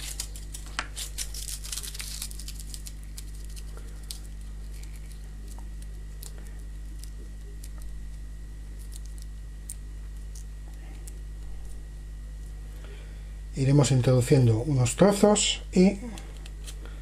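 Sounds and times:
aluminium foil crinkling: 0.0s - 12.6s, 16.4s - 17.0s.

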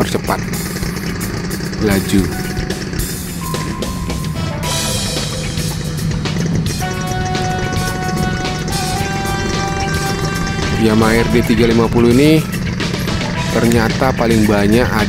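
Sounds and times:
steady low rumble: 0.0s - 15.0s
music with long held notes: 0.6s - 15.0s.

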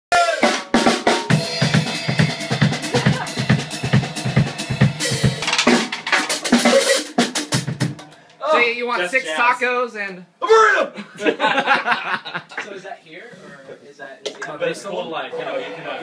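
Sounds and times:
drum kit groove: 0.1s - 8.4s.

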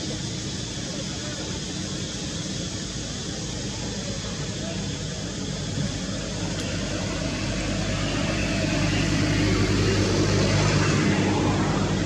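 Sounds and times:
motor engine droning: 0.0s - 12.0s.

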